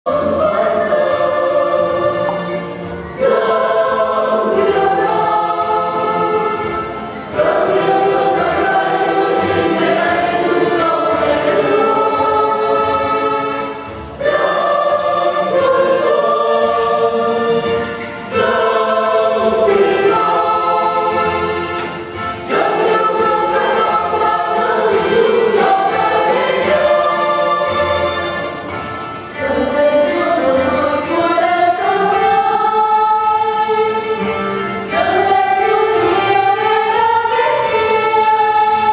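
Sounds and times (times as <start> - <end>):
choir singing a hymn: 0.1 - 38.9.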